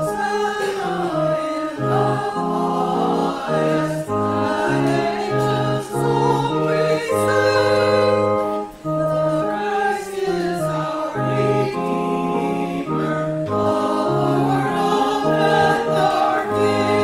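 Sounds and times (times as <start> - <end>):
organ playing slow hymn: 0.0 - 17.0
small choir singing: 0.0 - 17.0.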